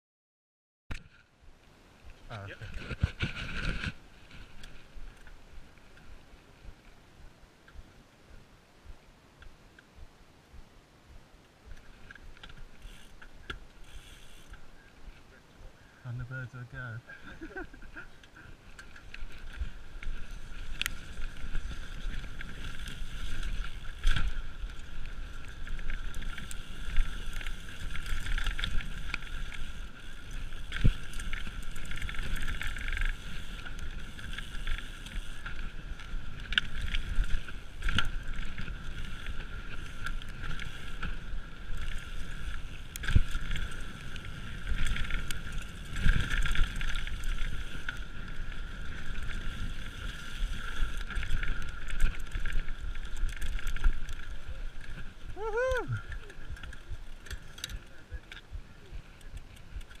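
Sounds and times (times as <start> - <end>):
bike tyre rumble and rattling: 1.0 - 8.5, 11.1 - 15.4, 17.2 - 60.0.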